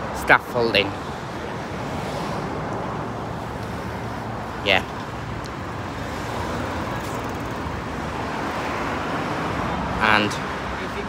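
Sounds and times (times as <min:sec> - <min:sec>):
road traffic: 0:00.0 - 0:11.0
passing vehicle: 0:00.9 - 0:11.0.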